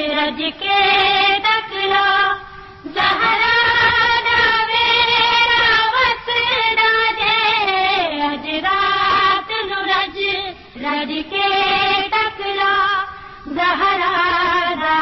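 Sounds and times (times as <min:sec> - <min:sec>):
woman singing a lament: 0:00.0 - 0:15.0.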